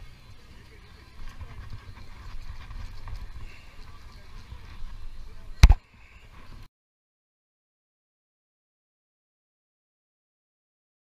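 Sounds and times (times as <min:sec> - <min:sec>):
wind buffeting microphone: 0:00.0 - 0:06.7.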